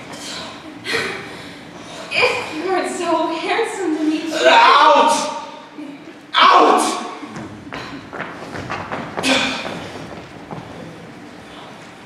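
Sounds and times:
footsteps on stage floor: 7.3s - 12.0s.

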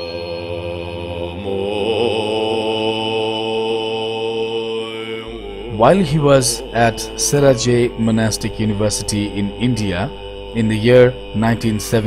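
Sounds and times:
low steady drone: 0.0s - 12.0s
voice chanting long notes: 0.0s - 12.0s.

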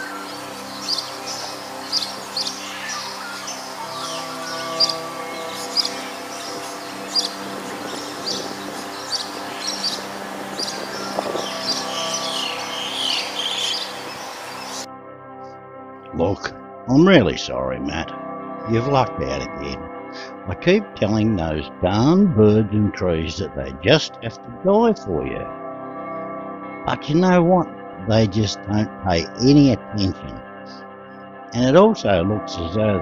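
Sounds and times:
wild birds chirping: 0.0s - 14.9s
background music: 0.0s - 33.0s.

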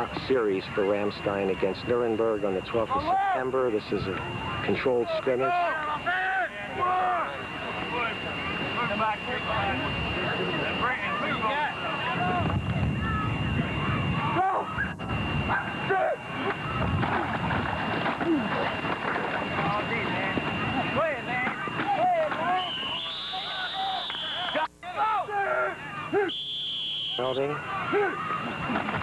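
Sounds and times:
many voices shouting and talking: 0.0s - 29.0s
high whistle blowing: 0.8s - 16.8s, 19.4s - 29.0s.

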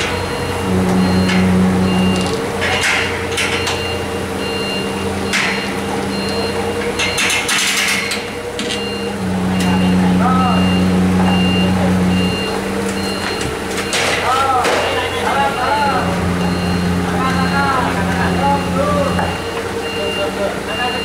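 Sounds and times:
forklift engine running: 0.0s - 21.0s
warning beeper: 0.1s - 7.3s, 8.6s - 21.0s.

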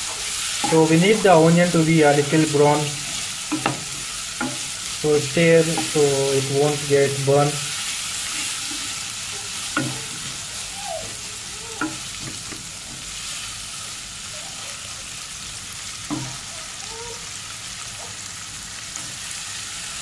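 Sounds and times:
onions sizzling in hot oil: 0.0s - 20.0s.

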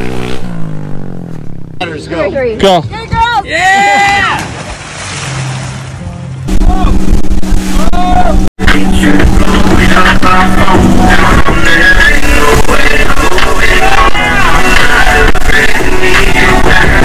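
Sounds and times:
person yelling: 3.0s - 4.5s, 7.8s - 8.4s
splash into lake water: 4.3s - 6.0s
loud music with steady beat: 8.6s - 17.0s.

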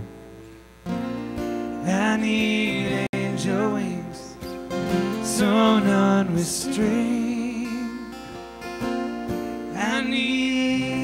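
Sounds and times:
acoustic guitars strumming: 0.0s - 11.0s.

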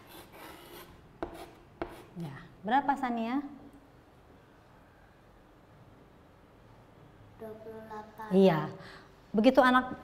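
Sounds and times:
chalk scratching on blackboard: 0.0s - 2.2s
chalk tapping on board: 0.0s - 2.2s.

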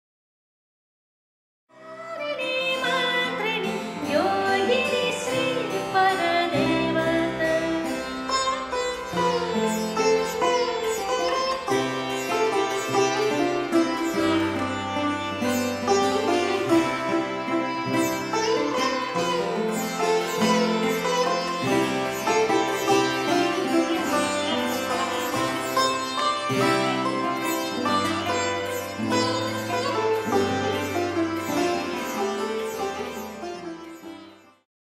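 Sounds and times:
sitar melody with gliding notes: 1.7s - 34.7s.

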